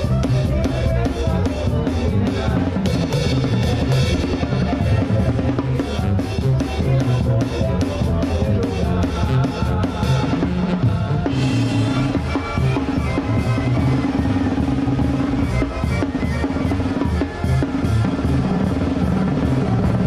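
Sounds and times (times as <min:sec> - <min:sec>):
drum kit: 0:00.0 - 0:20.0
live banda music: 0:00.0 - 0:20.0
tuba bass line: 0:00.0 - 0:20.0
brass: 0:02.0 - 0:20.0.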